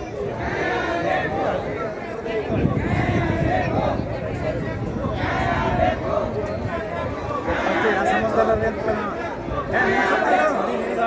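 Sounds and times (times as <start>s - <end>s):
crowd chanting a slogan: 0.0s - 11.0s
crowd of men talking and shouting: 0.0s - 11.0s.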